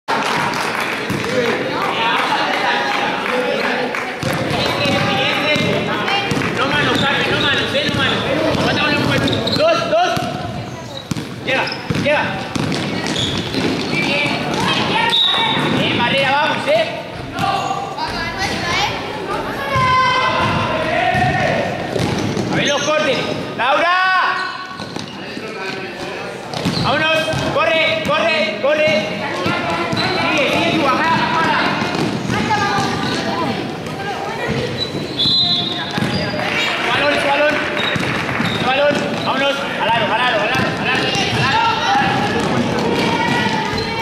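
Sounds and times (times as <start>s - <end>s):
basketball bouncing on court: 4.2s - 16.3s, 19.7s - 22.6s, 26.5s - 44.0s
voices shouting and cheering: 13.9s - 24.8s, 26.8s - 44.0s
many voices calling out: 40.8s - 44.0s.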